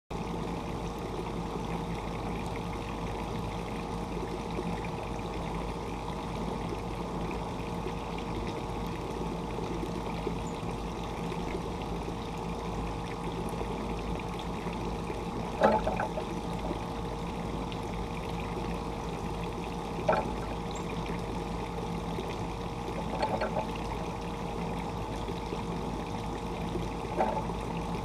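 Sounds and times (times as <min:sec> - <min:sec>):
constant hum: 0:00.1 - 0:28.0.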